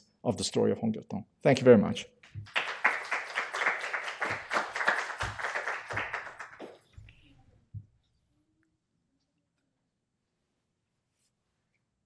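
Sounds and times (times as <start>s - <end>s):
audience applauding: 2.3s - 6.9s.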